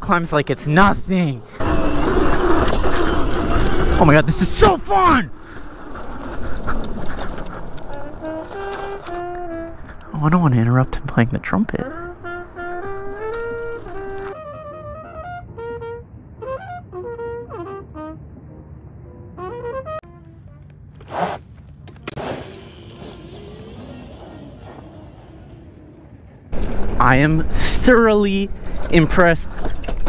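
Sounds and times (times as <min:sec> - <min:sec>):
trumpet playing held notes: 0:11.9 - 0:18.2
steady rushing noise: 0:22.1 - 0:27.9.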